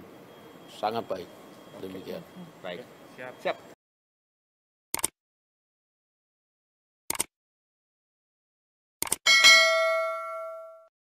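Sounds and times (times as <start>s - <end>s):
quick clicks: 4.9s - 5.2s, 7.1s - 7.3s, 9.0s - 9.2s
notification bell ding: 9.3s - 10.9s.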